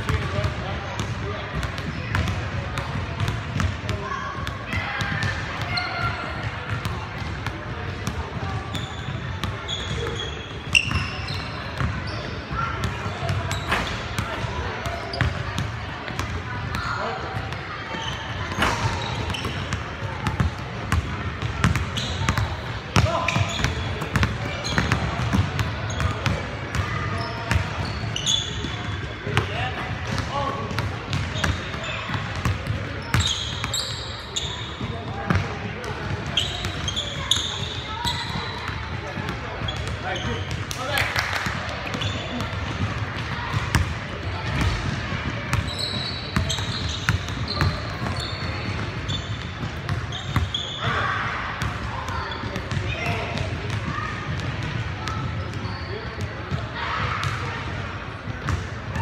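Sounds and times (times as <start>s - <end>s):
sneakers squeaking: 1.0s - 59.0s.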